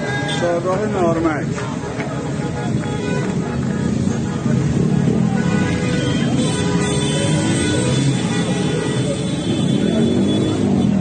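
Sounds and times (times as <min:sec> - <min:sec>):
crowd voices: 0:00.0 - 0:11.0
cars driving past: 0:00.7 - 0:11.0.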